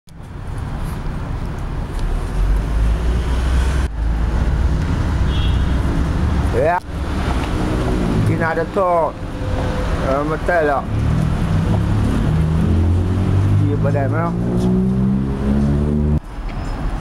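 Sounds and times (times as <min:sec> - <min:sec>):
road vehicles rumbling: 0:00.1 - 0:17.0.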